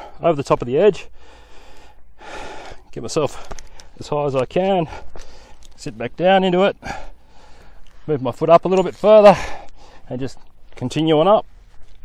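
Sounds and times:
man breathing hard: 0:01.0 - 0:04.0, 0:04.8 - 0:05.8, 0:06.8 - 0:08.0, 0:09.3 - 0:10.1.

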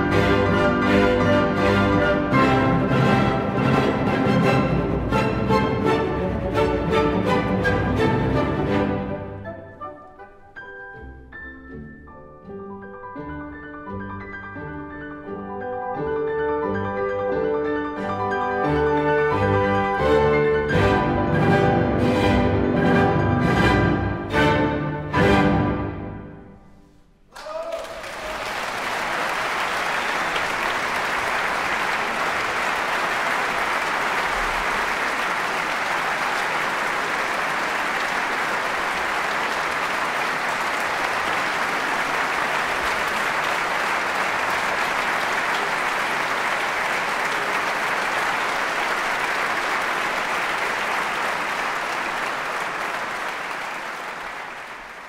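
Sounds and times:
audience applauding: 0:27.3 - 0:55.0.

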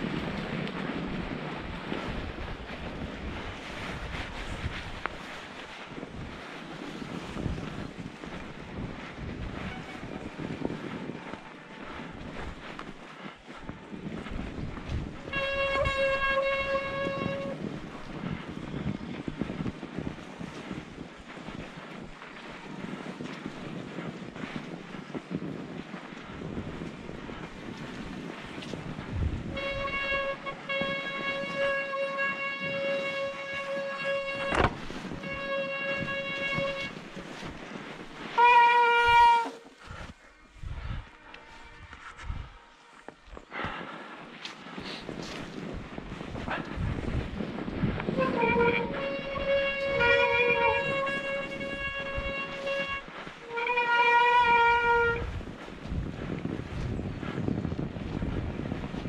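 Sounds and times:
tyres rolling over snow: 0:00.0 - 0:59.0
wind: 0:00.0 - 0:59.0.

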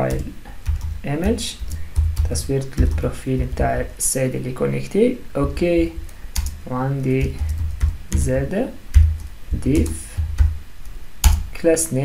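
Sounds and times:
man talking: 0:00.0 - 0:00.4, 0:01.0 - 0:01.7, 0:02.3 - 0:06.0, 0:06.6 - 0:07.5, 0:08.1 - 0:08.8, 0:09.5 - 0:10.2, 0:11.6 - 0:12.0
computer keyboard typing: 0:00.0 - 0:03.9, 0:05.7 - 0:11.5.

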